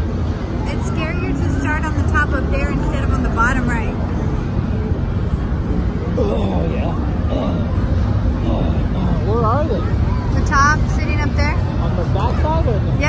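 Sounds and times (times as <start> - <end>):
low fairground rumble: 0.0 - 13.0
high wavering voices: 6.2 - 9.4.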